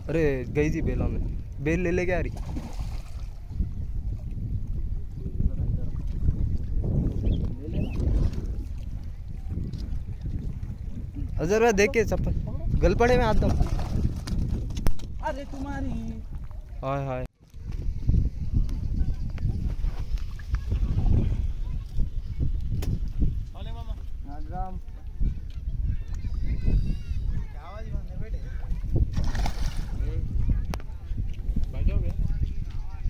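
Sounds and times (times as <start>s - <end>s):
wind noise on microphone: 0.0s - 33.0s
splash in water: 2.3s - 3.4s, 29.1s - 30.0s.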